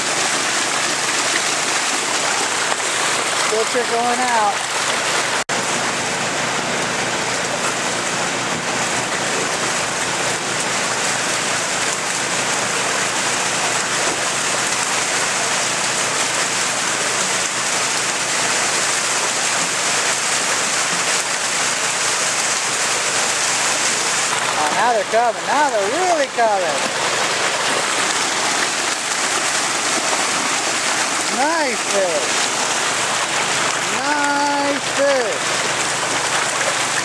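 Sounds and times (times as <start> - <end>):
water rushing down a chute: 0.0 - 37.0.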